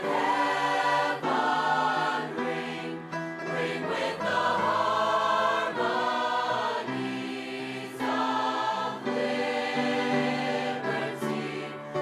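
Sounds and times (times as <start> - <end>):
choir singing in harmony: 0.0 - 12.0.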